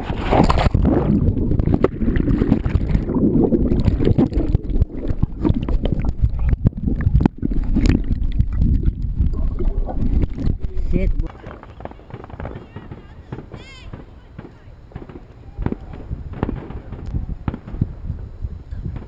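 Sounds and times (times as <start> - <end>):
gurgling bubbles: 0.0 - 11.3
underwater water rumbling: 0.0 - 11.3
clicks underwater: 0.0 - 11.5.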